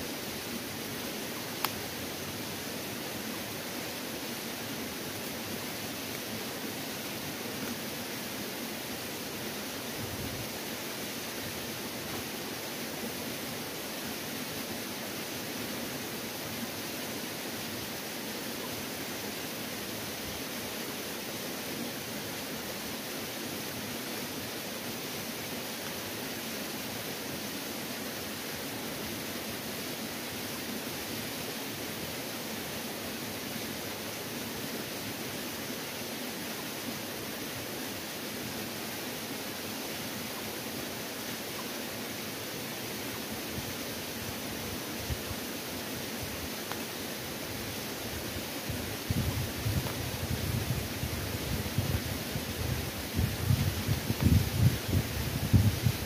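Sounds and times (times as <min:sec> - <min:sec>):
steady rushing noise: 0:43.3 - 0:56.0.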